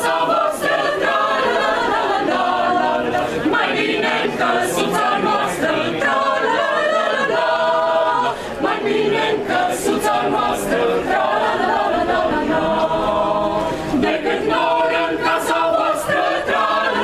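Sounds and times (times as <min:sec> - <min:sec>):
mixed choir singing unaccompanied: 0:00.0 - 0:17.0.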